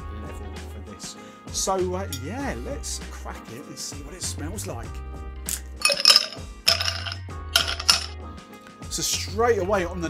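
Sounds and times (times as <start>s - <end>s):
background music: 0.0s - 10.0s
bottle stopper squeaking and clinking: 5.5s - 8.1s.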